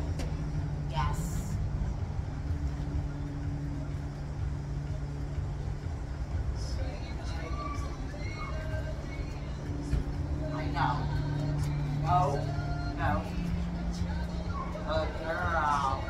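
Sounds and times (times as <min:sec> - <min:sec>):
low mechanical hum: 0:00.0 - 0:16.0
low rumble: 0:00.0 - 0:16.0.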